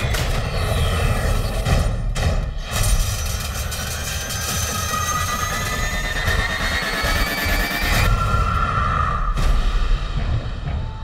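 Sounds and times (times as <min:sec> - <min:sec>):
shrill metallic screech: 0:03.9 - 0:09.4.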